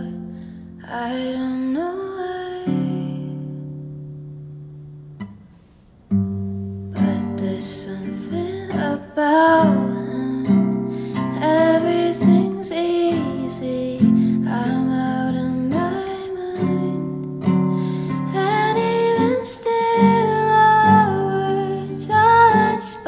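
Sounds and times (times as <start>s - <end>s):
woman singing a slow song: 0.0s - 3.9s, 6.9s - 23.0s
classical acoustic guitar: 0.0s - 23.0s.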